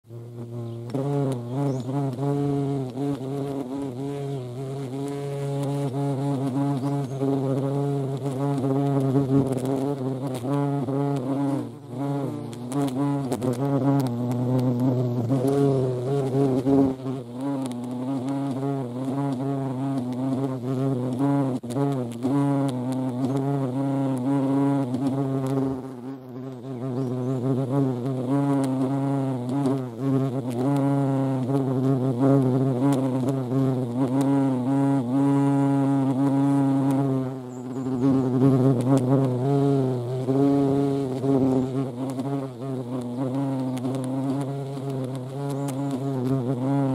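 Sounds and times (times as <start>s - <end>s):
hornet wings buzzing: 0.1s - 46.9s.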